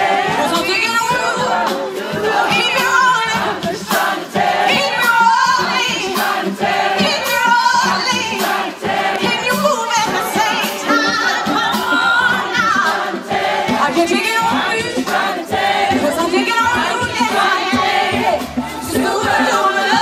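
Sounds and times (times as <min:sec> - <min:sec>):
crowd singing in chorus: 0:00.0 - 0:20.0.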